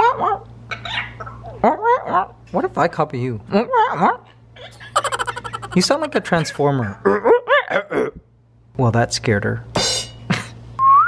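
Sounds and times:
parrot squawking: 4.8s - 6.6s.

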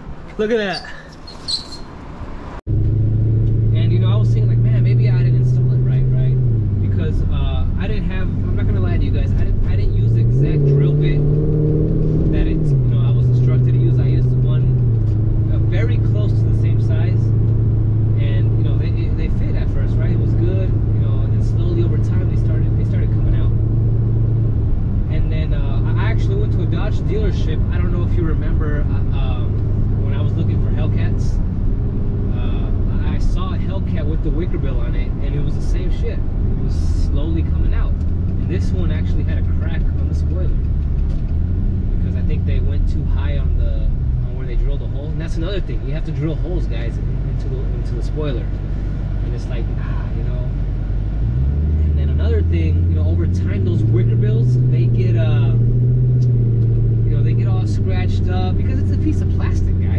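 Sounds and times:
car engine droning: 0.0s - 59.9s
voices: 0.3s - 1.8s, 3.8s - 11.4s, 12.2s - 14.8s, 15.5s - 17.4s, 18.2s - 23.6s, 25.1s - 31.4s, 32.3s - 40.6s, 42.0s - 48.6s, 49.2s - 50.6s, 51.8s - 55.7s, 57.1s - 59.9s.

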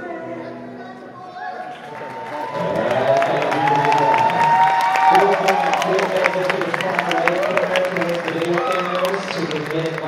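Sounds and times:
audience clapping: 1.7s - 10.0s
man talking: 2.6s - 10.0s.

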